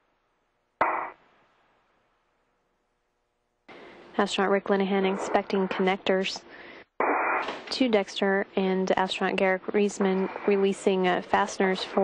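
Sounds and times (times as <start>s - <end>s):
radio channel click: 0.8s - 1.1s, 7.0s - 7.8s
radio squawk: 0.8s - 1.2s, 5.0s - 5.8s, 7.0s - 7.6s.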